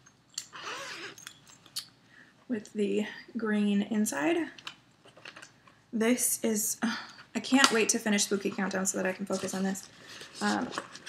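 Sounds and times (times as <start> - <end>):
zipper pull click: 0.4 - 1.3
zipper rasp: 0.5 - 1.2.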